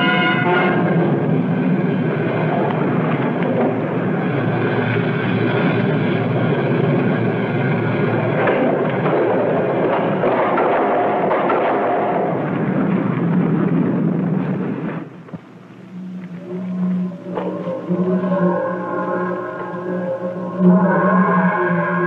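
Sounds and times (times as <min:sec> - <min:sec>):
roar of fire: 0:00.0 - 0:15.3
film score: 0:00.0 - 0:22.0
sustained low musical tones: 0:00.0 - 0:22.0.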